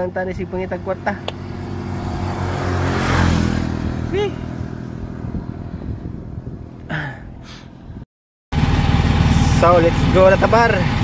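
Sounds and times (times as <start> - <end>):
small motorcycle engine running: 8.6 - 11.0.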